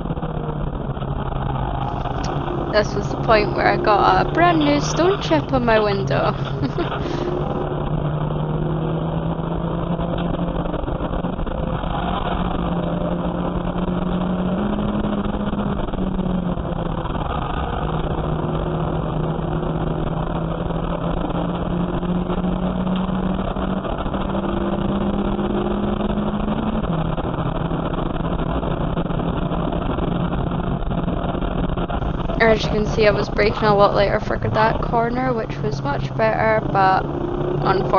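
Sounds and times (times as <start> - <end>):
race car engine at high revs: 0.0 - 37.9
road and tyre noise: 0.0 - 37.9.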